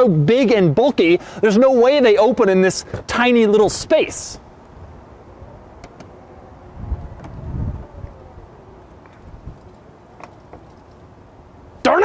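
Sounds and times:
powered car door whirring: 5.7 - 8.2.

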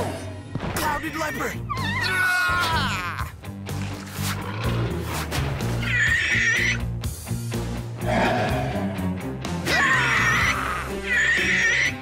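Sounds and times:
background music: 0.0 - 12.0
harsh animal cry: 5.8 - 6.9, 8.0 - 12.0.

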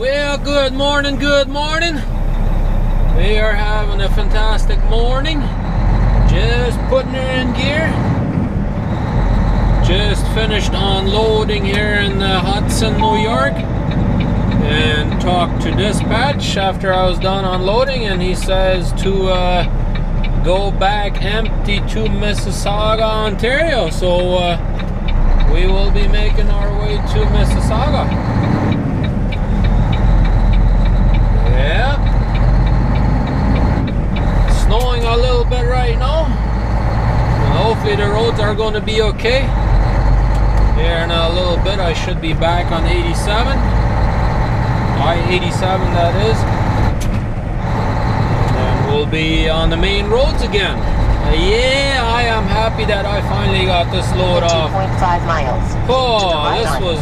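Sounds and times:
diesel truck engine rumbling: 0.0 - 57.0.

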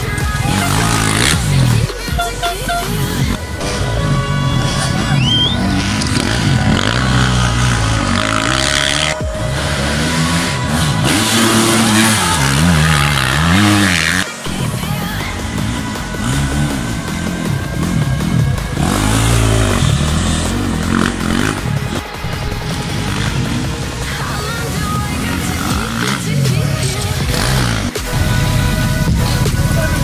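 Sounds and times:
dirt bike engines revving: 0.0 - 30.0
music playing: 0.0 - 30.0.

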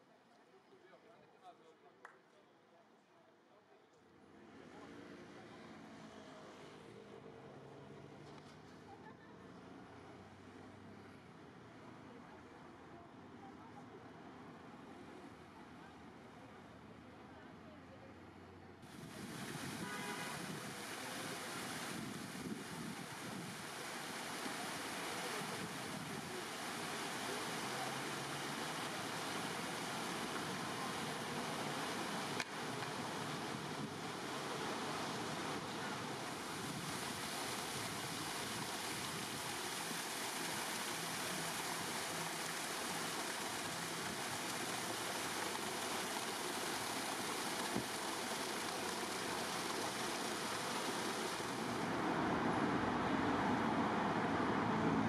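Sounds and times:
fountain water splashing: 18.8 - 55.0.

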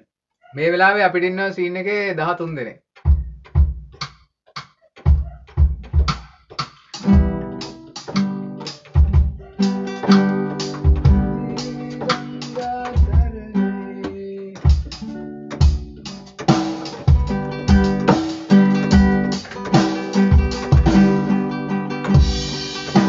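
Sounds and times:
low percussive thumps: 3.0 - 4.1, 7.0 - 8.2, 8.9 - 9.4, 10.0 - 11.4, 12.9 - 13.4
acoustic guitar: 6.9 - 23.0.

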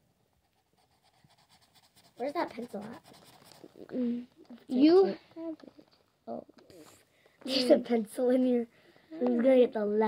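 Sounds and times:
pencil scratching on paper: 0.3 - 3.9.

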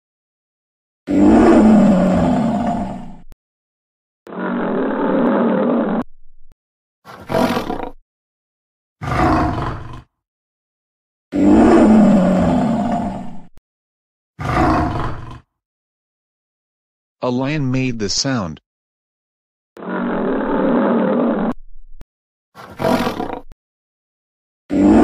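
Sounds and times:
lion roaring: 1.1 - 3.2, 4.3 - 6.0, 7.1 - 8.0, 9.0 - 10.1, 11.3 - 13.4, 14.4 - 15.4, 22.6 - 23.5, 24.7 - 25.0.

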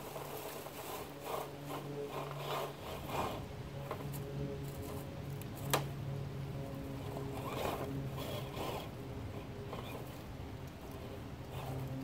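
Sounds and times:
tyres crunching dry leaves: 0.0 - 2.8
electric motor whining: 6.8 - 10.2.

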